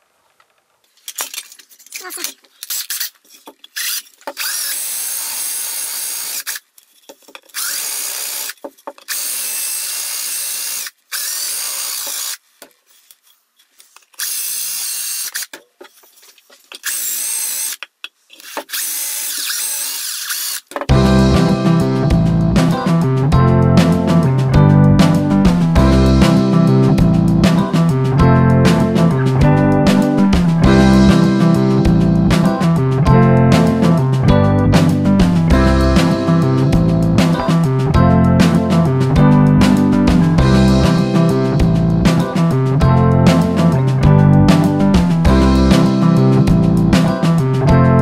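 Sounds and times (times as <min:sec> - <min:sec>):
cordless drill boring through wood: 0:03.8 - 0:06.6, 0:07.6 - 0:12.4, 0:14.2 - 0:15.5, 0:16.8 - 0:17.8, 0:18.4 - 0:20.7
music: 0:20.9 - 0:48.0.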